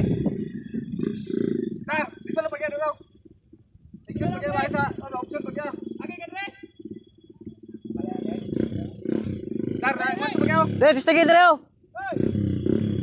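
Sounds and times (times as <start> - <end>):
dirt bike engine buzzing: 4.1 - 11.4, 12.1 - 13.0.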